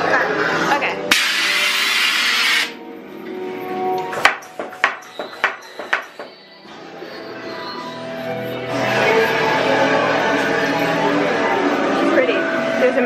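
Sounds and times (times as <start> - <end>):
background music: 0.0 - 13.0
loud hiss: 1.1 - 2.8
sharp knocks: 4.2 - 6.4.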